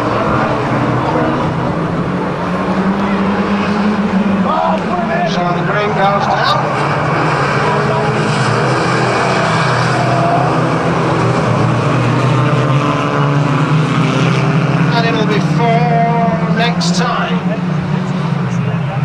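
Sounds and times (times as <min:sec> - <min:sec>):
voices: 0:00.0 - 0:10.9, 0:14.8 - 0:19.0
racing car engines drone: 0:00.0 - 0:19.0.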